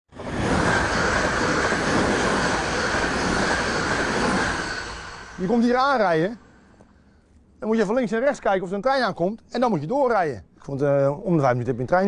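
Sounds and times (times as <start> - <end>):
electric train passing at speed: 0.1 - 6.8.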